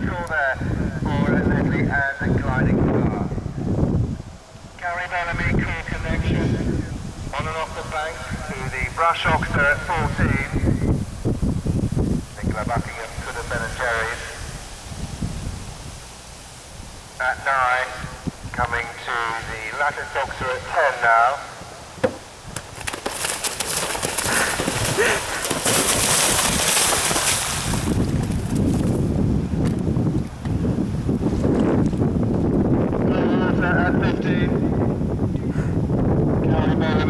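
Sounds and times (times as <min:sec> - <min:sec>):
wind rumbling on microphone: 0:00.0 - 0:37.0
horse galloping on grass: 0:22.0 - 0:29.2
hooves splashing in water: 0:22.6 - 0:29.0.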